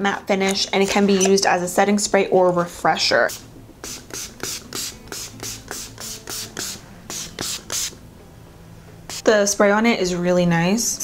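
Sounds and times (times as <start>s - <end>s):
spray bottle hissing: 3.3s - 8.0s, 9.1s - 9.3s.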